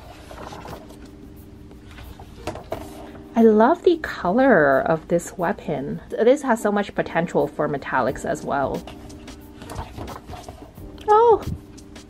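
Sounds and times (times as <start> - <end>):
pages flipping: 0.0 - 1.2, 1.8 - 3.2, 8.7 - 11.1.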